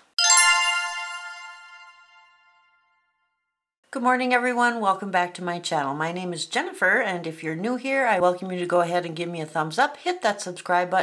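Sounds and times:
bright chime ringing: 0.2 - 3.1.

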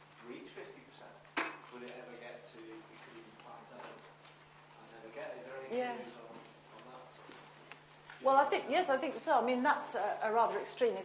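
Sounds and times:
hard object clinking: 1.4 - 1.7.

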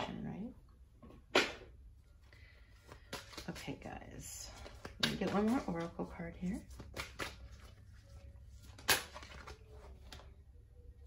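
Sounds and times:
cards rustling: 2.2 - 10.5.

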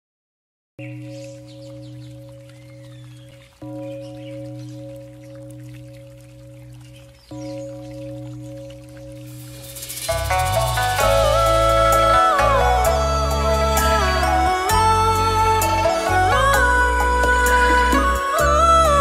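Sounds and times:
faint birdsong: 0.8 - 10.0
singing bowl bell ringing: 0.8 - 19.0
music: 9.4 - 19.0.

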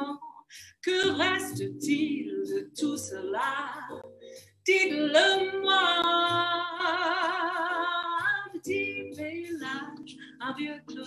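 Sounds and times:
woman singing with vibrato: 0.0 - 4.0, 4.7 - 11.0.

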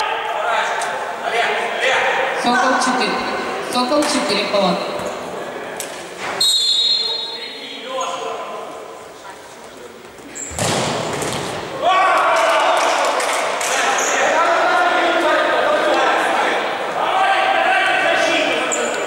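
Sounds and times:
referee's whistle: 6.4 - 7.6
players shouting and cheering: 11.6 - 19.0.

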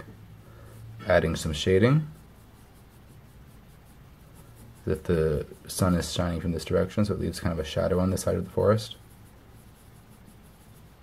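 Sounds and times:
low steady hum: 0.0 - 11.0
pencil scratching on paper: 0.6 - 11.0.

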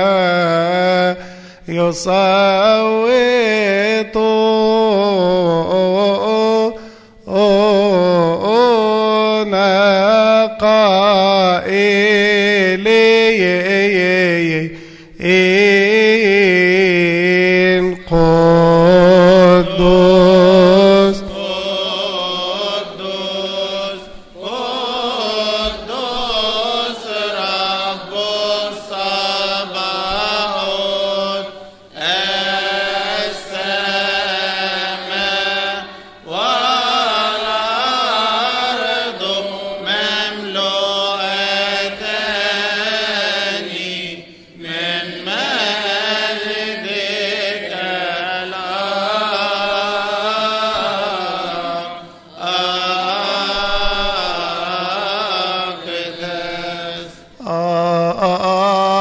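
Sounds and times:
voices singing a chant: 0.0 - 59.0.

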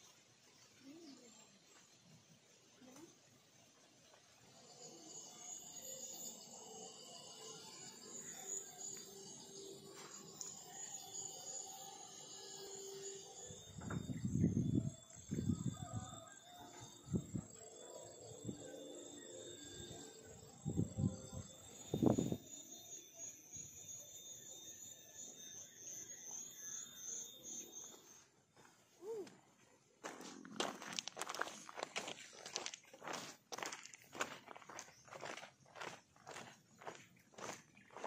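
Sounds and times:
steady high-pitched hiss: 0.0 - 38.0
roosters crowing: 15.3 - 17.3.

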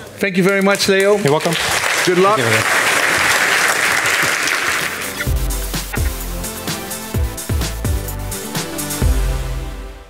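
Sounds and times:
audience applause: 1.0 - 5.9
electronic music with deep bass: 5.0 - 10.0.

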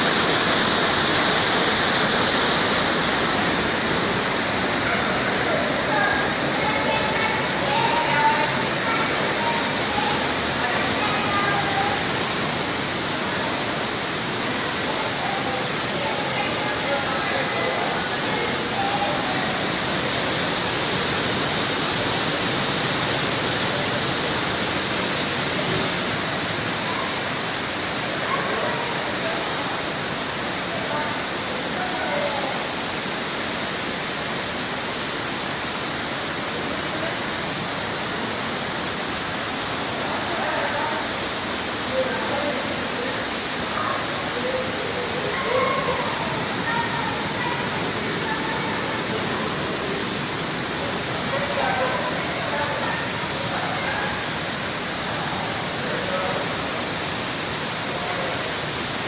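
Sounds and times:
water rushing: 0.0 - 59.0
faint indistinct voices: 3.0 - 33.2, 39.4 - 59.0.

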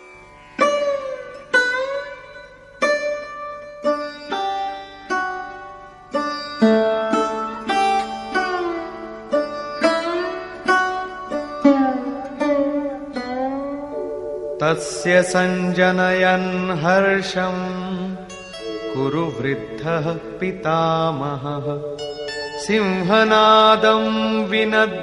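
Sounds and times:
plucked string instrument melody: 0.0 - 25.0.

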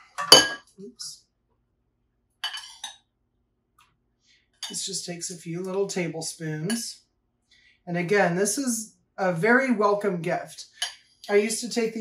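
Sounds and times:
spoon clinking against glass bowl: 2.4 - 3.0.

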